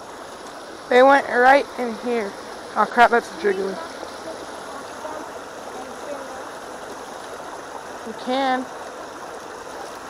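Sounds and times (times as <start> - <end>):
creek water running over rocks: 0.0 - 10.0.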